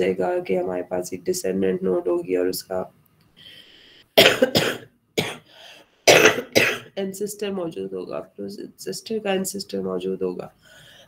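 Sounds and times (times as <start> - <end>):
person coughing: 4.2 - 5.5, 6.1 - 6.9.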